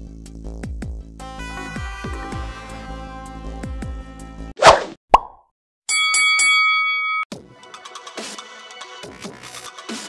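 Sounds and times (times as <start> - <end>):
plop-like hit: 4.6 - 5.4.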